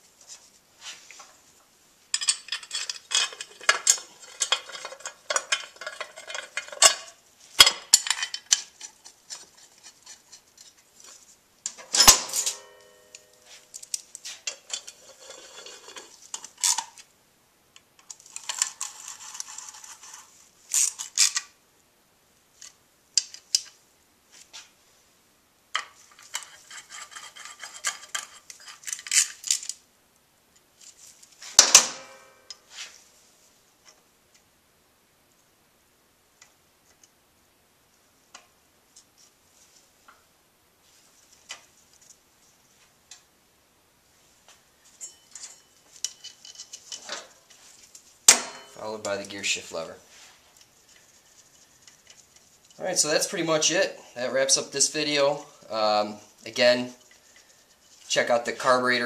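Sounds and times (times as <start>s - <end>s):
metal hand tools clinking: 2.1s - 9.0s, 11.7s - 16.9s, 45.0s - 47.4s, 48.3s - 49.3s
ringing metal clank: 12.0s - 13.5s, 31.6s - 32.6s, 45.0s - 45.7s, 48.3s - 48.8s.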